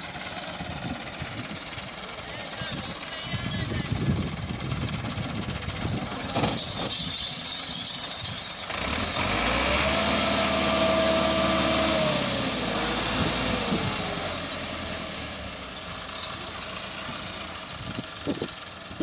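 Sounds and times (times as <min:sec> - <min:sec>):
tractor diesel engine revving: 0:00.0 - 0:19.0.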